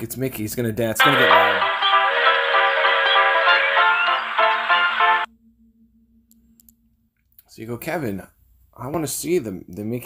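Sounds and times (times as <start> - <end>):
short app tune: 1.0 - 5.3.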